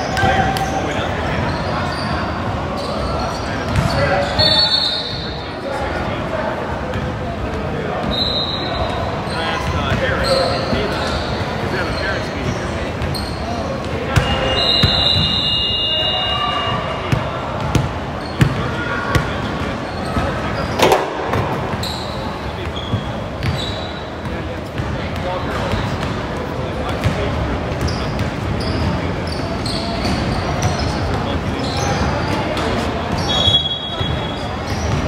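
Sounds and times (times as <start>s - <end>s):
sneaker squeaks: 0.0s - 5.8s, 7.9s - 35.0s
voices in a gym: 0.0s - 35.0s.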